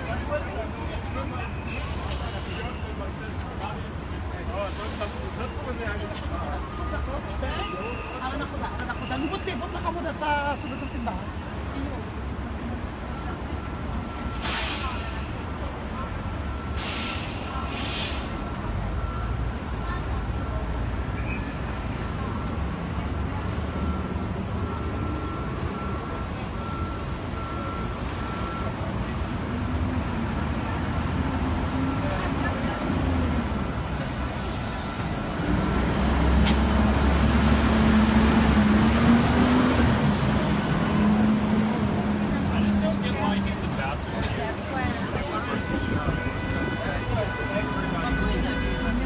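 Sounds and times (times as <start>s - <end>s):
rumble of passing vehicles: 0.0s - 49.0s.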